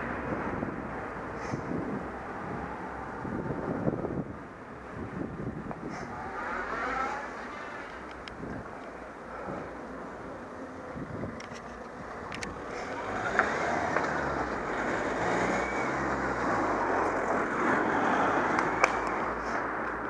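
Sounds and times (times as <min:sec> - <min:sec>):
wind and road noise: 0:00.0 - 0:20.0
car passing close: 0:05.8 - 0:08.3, 0:11.7 - 0:20.0
bike clicks and rattles: 0:11.3 - 0:12.6.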